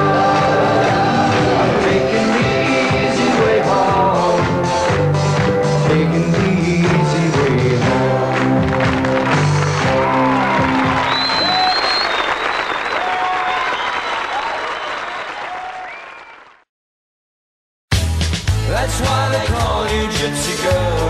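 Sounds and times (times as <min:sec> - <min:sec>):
live band playing pop song: 0:00.0 - 0:11.7, 0:17.9 - 0:21.0
audience applauding: 0:00.0 - 0:16.7
whistles from audience: 0:10.1 - 0:16.6.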